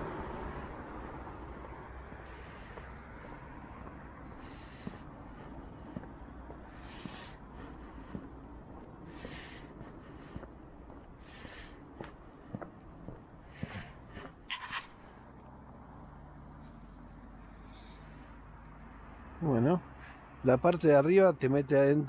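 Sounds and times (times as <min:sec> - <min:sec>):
person breathing: 0:00.0 - 0:20.4
footsteps on paved path: 0:00.0 - 0:21.0.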